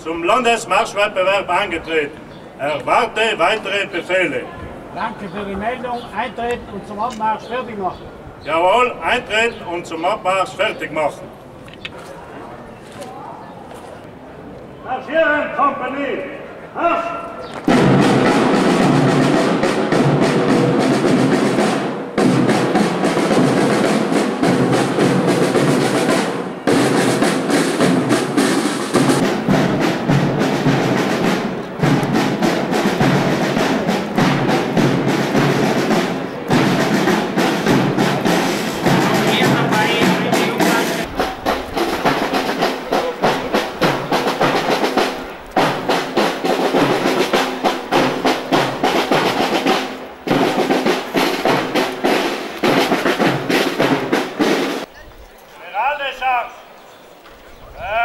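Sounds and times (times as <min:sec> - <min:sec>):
snare drum rolls: 0:17.6 - 0:54.9
bass drum: 0:29.0 - 0:49.7.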